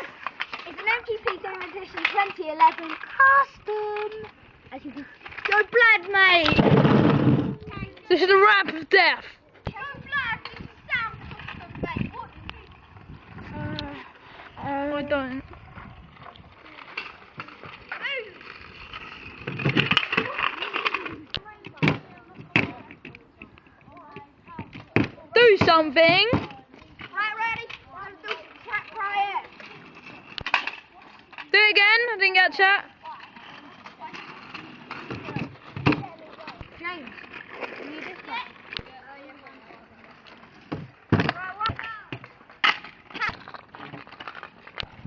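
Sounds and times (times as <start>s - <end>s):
children's voices: 0.0s - 6.6s, 7.4s - 19.0s, 20.0s - 42.5s, 43.1s - 43.6s
kick scooters clattering on tarmac: 0.0s - 45.0s.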